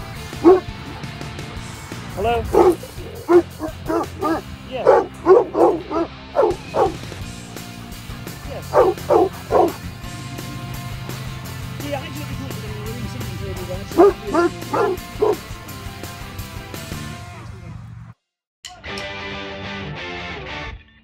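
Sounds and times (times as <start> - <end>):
background music: 0.0 - 17.7
dog barking: 0.4 - 1.0, 2.3 - 7.0, 8.5 - 10.8, 13.9 - 15.5.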